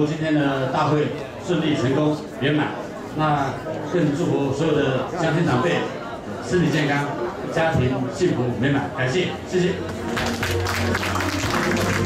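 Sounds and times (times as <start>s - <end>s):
audience applauding: 10.1s - 12.0s
background music with held notes: 10.1s - 12.0s.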